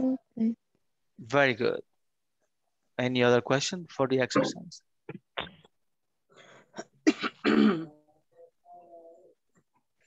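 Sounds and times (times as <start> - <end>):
person clearing throat: 6.8 - 8.1.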